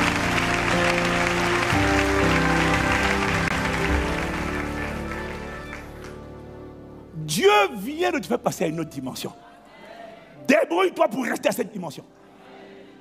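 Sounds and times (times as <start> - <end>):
crowd applauding and cheering: 0.0 - 6.8
church music with sustained chords: 0.0 - 13.0.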